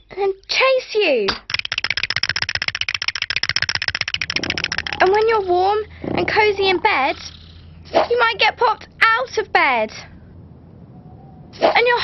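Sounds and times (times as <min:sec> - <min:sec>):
chattering teeth clacking: 0:01.3 - 0:08.2
low hum: 0:03.7 - 0:12.0.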